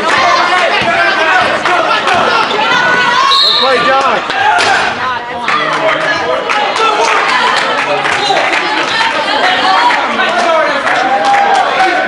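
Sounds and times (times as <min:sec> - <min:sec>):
spectators calling out and talking: 0:00.0 - 0:12.0.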